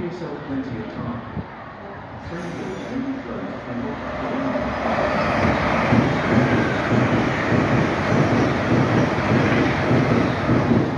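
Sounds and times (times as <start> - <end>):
train wheels rushing on rail: 2.2 - 10.9.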